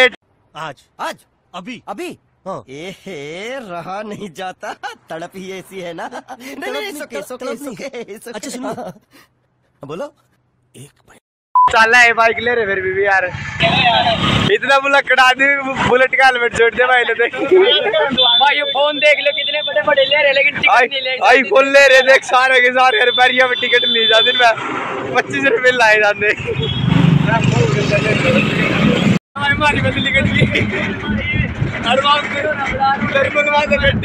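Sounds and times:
voices: 0.0 - 9.1, 10.8 - 34.0
men talking: 0.0 - 9.2, 9.8 - 10.2, 10.8 - 26.6, 27.2 - 28.6, 29.4 - 34.0
truck engine rumble: 15.8 - 34.0
motor vehicle passing: 24.5 - 29.2
wind noise: 29.4 - 34.0.

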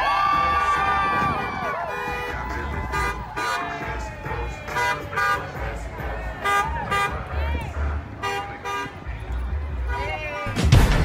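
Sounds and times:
crowd voices: 0.0 - 11.0
vehicle horns honking: 1.0 - 10.7.

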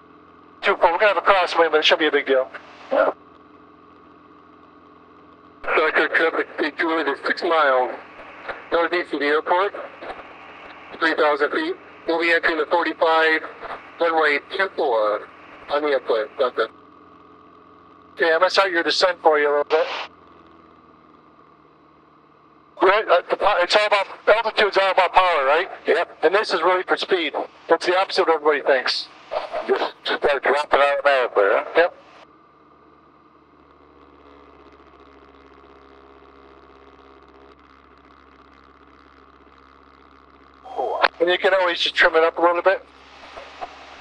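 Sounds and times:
light aircraft engine drone: 0.0 - 44.0
man speaking: 0.6 - 3.1, 5.6 - 10.1, 11.0 - 16.7, 18.2 - 20.0, 22.8 - 32.0, 40.7 - 42.8.

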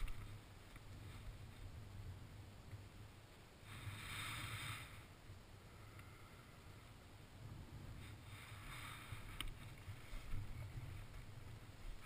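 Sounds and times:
low wind rumble on microphone: 0.0 - 12.0
soft rustling hiss: 0.0 - 12.0.

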